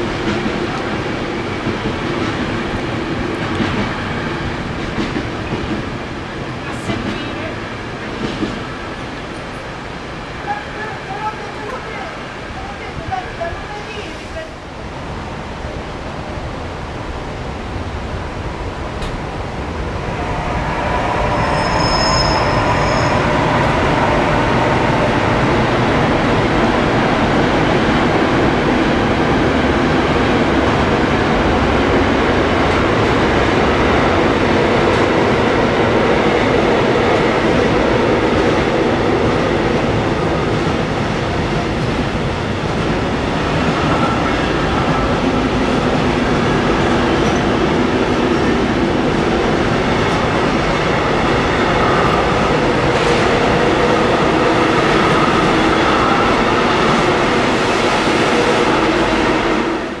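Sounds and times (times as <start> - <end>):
freight train passing at speed: 0.0 - 60.0.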